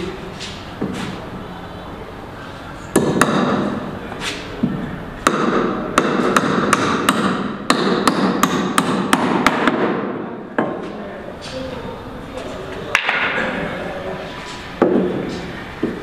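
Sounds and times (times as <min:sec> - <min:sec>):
hammer striking timber: 0:03.0 - 0:03.8, 0:05.2 - 0:10.8.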